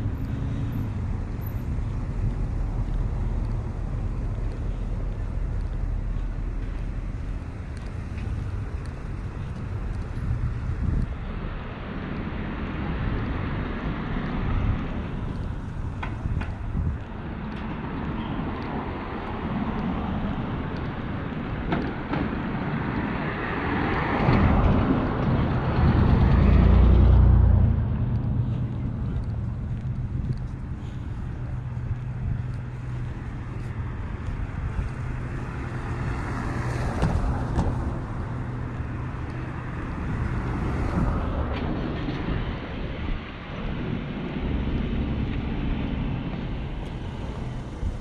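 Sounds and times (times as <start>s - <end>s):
low engine hum: 0.0s - 48.0s
street traffic: 0.0s - 48.0s
wind buffeting microphone: 0.0s - 48.0s
vehicle passing close by: 22.3s - 48.0s.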